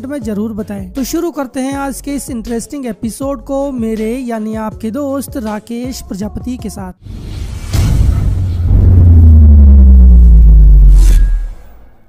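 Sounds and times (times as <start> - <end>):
deep cinematic bass boom: 7.1 - 11.8.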